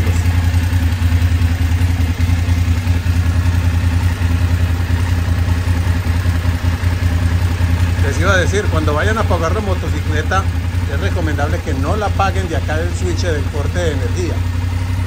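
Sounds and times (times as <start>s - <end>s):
motorcycle engine idling: 0.0s - 15.0s.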